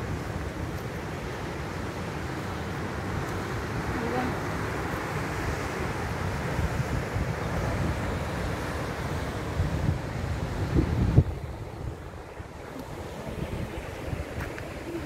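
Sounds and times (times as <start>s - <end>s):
sea surf breaking on rocks: 0.0s - 15.0s
wind buffeting microphone: 0.0s - 15.0s.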